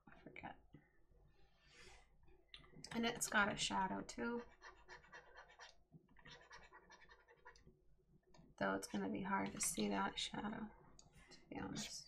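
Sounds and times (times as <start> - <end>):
stylus scratching on drawing tablet: 3.0 - 7.7.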